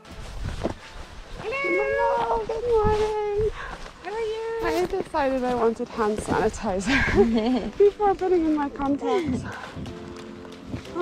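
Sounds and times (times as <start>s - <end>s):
person's high-pitched wordless cry: 1.6s - 2.6s.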